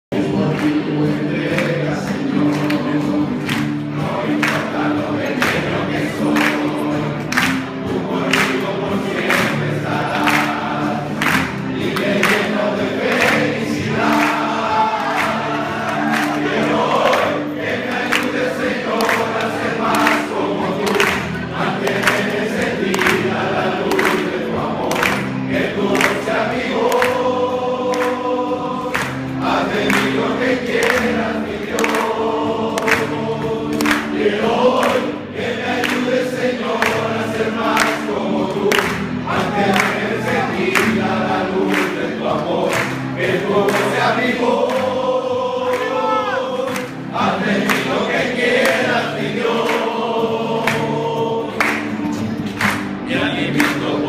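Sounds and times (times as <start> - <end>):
people singing in unison: 0.1 - 54.0.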